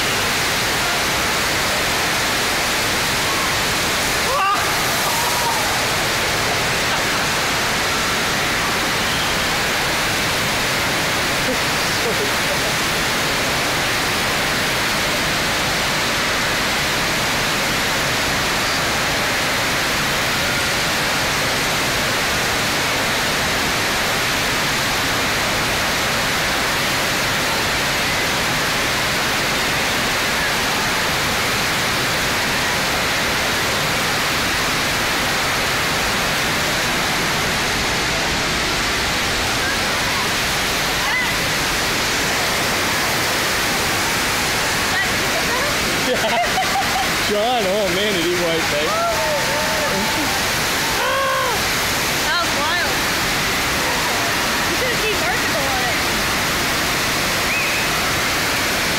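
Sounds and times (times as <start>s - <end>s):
water rushing over surf slope: 0.0s - 58.9s.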